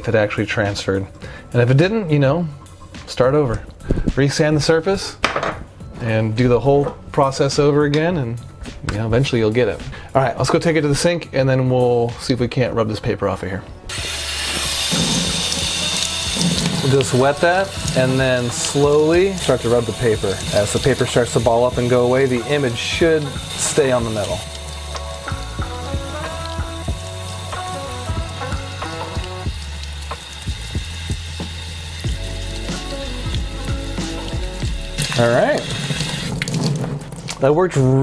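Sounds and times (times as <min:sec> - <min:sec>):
background music: 0:00.0 - 0:38.0
bristles scrubbing: 0:13.9 - 0:24.7
tap water running: 0:13.9 - 0:37.5.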